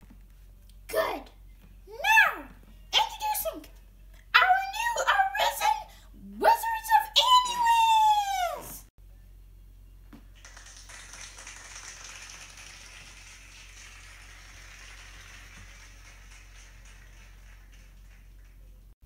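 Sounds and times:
faint room hiss: 8.5s - 19.0s.

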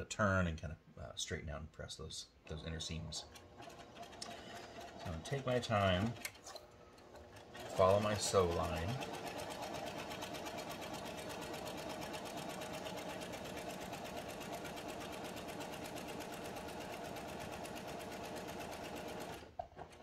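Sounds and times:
sewing machine stitching: 3.2s - 20.0s.

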